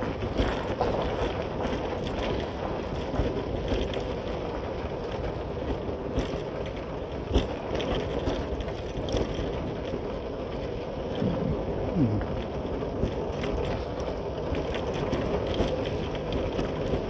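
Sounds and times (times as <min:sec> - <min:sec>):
motorcycle engine at low speed: 0:00.0 - 0:17.0
road noise on dirt: 0:00.0 - 0:17.0.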